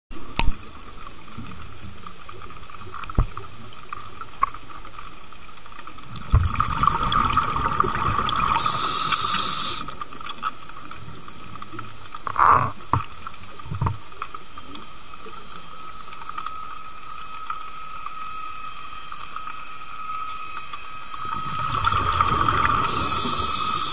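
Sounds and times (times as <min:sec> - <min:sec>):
constant high whine: 0:00.2 - 0:23.9
muffled underwater hiss: 0:00.2 - 0:23.9
faint clicks: 0:00.3 - 0:06.3, 0:09.1 - 0:21.2.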